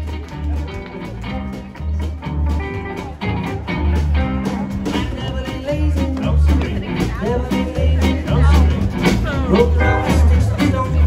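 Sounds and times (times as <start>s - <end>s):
drums: 0.0s - 11.0s
guitars picking: 0.0s - 11.0s
upright bass pulsing: 0.0s - 11.0s.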